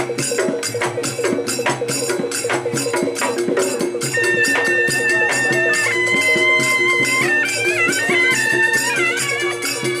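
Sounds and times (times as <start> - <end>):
drum and percussion strokes: 0.0 - 10.0
repeating lower melody: 1.3 - 8.6
shrill shawm: 1.5 - 10.0.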